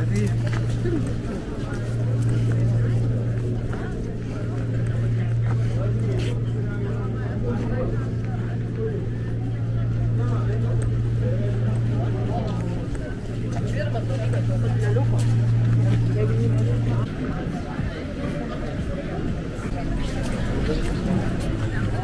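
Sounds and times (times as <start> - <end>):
indistinct voices: 0.0 - 22.0
steady low hum: 0.0 - 22.0.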